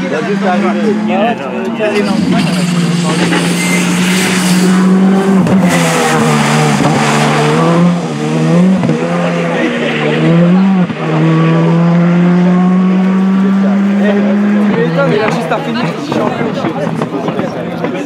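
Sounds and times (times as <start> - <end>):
rally car engine at high revs: 0.0 - 18.0.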